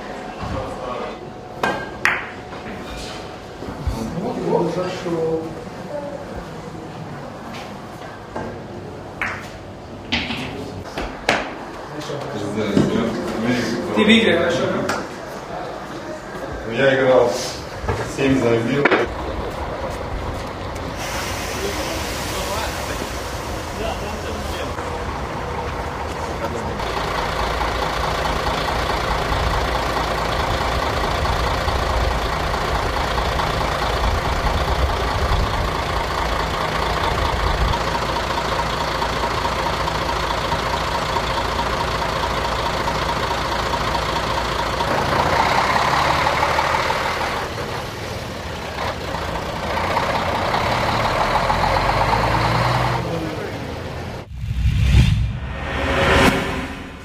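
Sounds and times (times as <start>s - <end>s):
indistinct voices: 10.3s - 29.4s
vehicle engine running: 17.6s - 57.0s.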